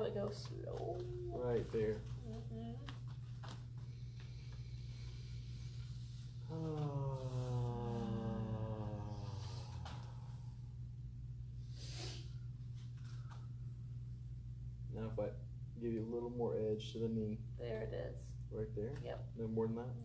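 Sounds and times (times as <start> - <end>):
steady low hum: 0.0 - 20.0
breathy exhale: 4.2 - 10.6
person sighing ahh: 6.5 - 10.3.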